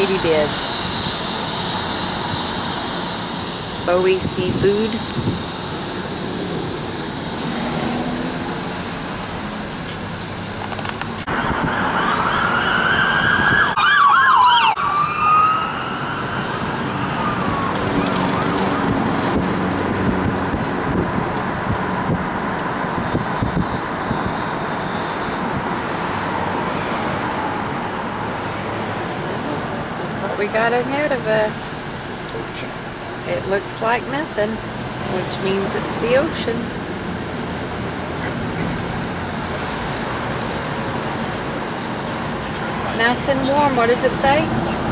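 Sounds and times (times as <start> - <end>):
emergency vehicle siren: 0.0 - 10.1, 10.7 - 44.9.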